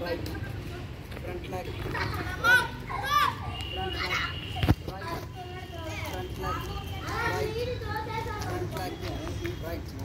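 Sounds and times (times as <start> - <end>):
children calling high-pitched: 2.2 - 8.8.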